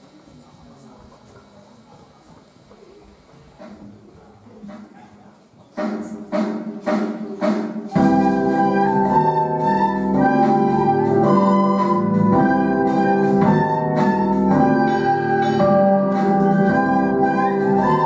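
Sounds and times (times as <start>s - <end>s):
murmur of voices: 0.0s - 18.0s
keyboard chords: 7.9s - 18.0s
recorder ensemble playing: 7.9s - 18.0s.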